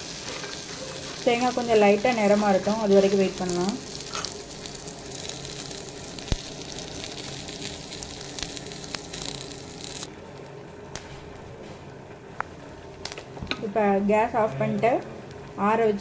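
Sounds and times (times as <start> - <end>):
food sizzling in oil in a pan: 0.0 - 10.1.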